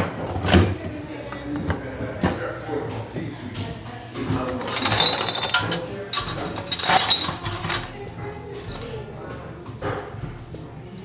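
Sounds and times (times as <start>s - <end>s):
glass ornaments clinking: 4.5s - 8.0s.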